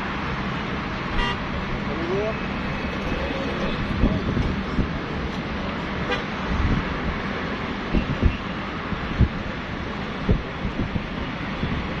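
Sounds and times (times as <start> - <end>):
traffic noise: 0.0 - 12.0
car horn toot: 1.2 - 1.4.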